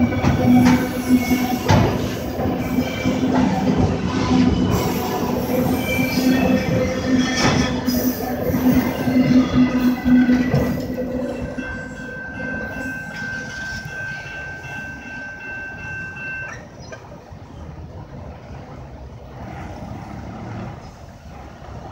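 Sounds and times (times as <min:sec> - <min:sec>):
steady wheel squeal: 0:00.0 - 0:10.9
freight train rolling past: 0:00.0 - 0:21.9.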